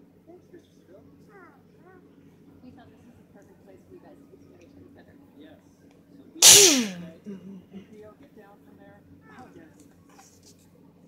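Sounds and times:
loud sneeze: 0:06.4 - 0:07.0.

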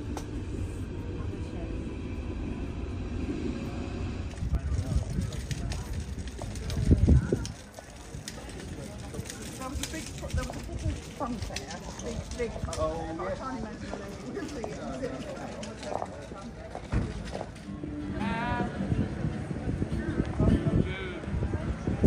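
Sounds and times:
low rumble: 0:00.0 - 0:07.6
passers-by talking: 0:00.0 - 0:22.0
footsteps on cobblestones: 0:04.6 - 0:17.7.

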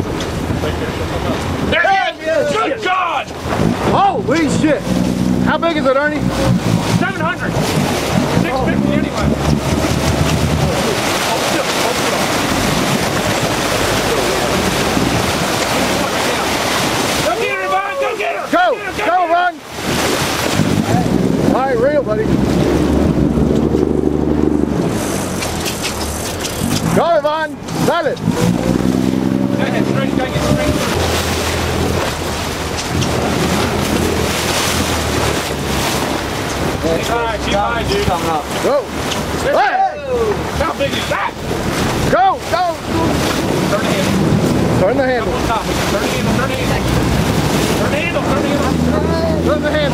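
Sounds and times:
boat engine running: 0:00.0 - 0:49.9
wind noise on microphone: 0:03.4 - 0:05.5, 0:06.2 - 0:11.2, 0:12.4 - 0:17.2, 0:19.8 - 0:27.0, 0:42.8 - 0:49.4
people shouting: 0:17.2 - 0:19.5, 0:39.4 - 0:40.4.

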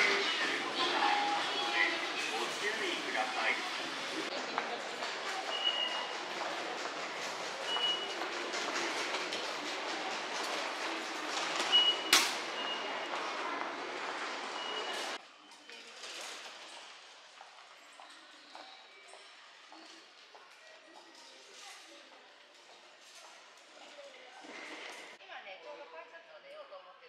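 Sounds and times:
station concourse noise: 0:00.0 - 0:15.4.

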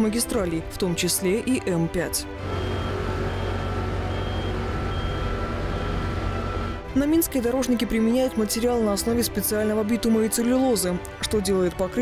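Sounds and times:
diesel engines rumbling: 0:02.4 - 0:06.9
faint high beeps: 0:02.5 - 0:06.8.

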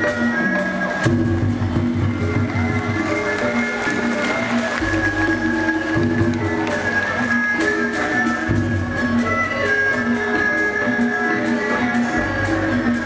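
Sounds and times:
gamelan ensemble playing: 0:00.0 - 0:13.0.

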